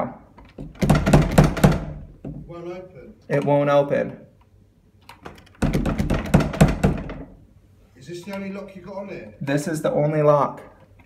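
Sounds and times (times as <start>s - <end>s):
door rattling and knocking in frame: 0.5s - 2.5s, 5.2s - 7.4s.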